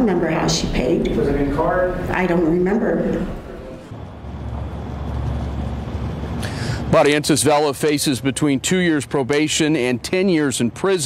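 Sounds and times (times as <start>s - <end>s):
low rumble with faint hiss: 0.0s - 11.0s.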